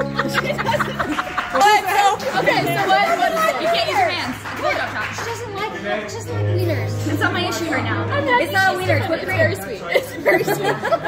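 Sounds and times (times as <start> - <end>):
several voices chattering: 0.0 - 11.0.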